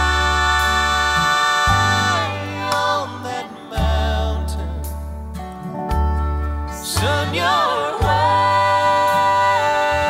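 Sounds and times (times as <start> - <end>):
bass line: 0.0 - 10.0.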